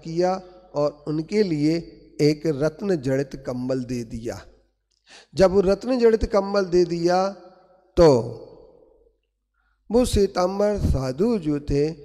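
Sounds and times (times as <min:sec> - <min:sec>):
man speaking: 0:00.0 - 0:04.5, 0:05.3 - 0:07.4, 0:08.0 - 0:08.4, 0:09.9 - 0:12.0.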